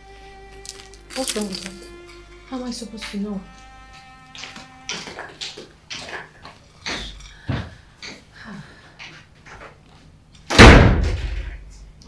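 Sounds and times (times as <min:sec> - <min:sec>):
loud slam-like impact: 0:10.5 - 0:11.6.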